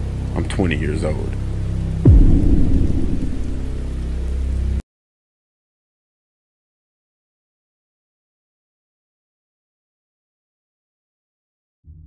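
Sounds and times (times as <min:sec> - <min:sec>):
low music drone: 0:00.0 - 0:04.8
deep boom rumbling: 0:02.0 - 0:04.2.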